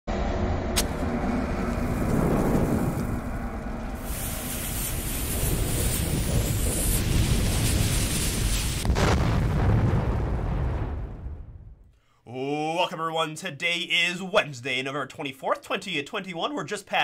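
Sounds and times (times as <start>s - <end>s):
low continuous rumble: 0.1s - 6.7s
explosion: 0.1s - 11.9s
sharp crack: 0.7s - 11.8s
hissing rush: 0.8s - 9.1s.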